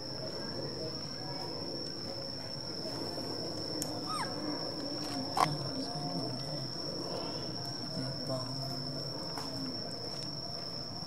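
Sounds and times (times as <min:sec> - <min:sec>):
steady high-pitched whine: 0:00.0 - 0:11.0
baby monkey squeaking: 0:04.1 - 0:04.3.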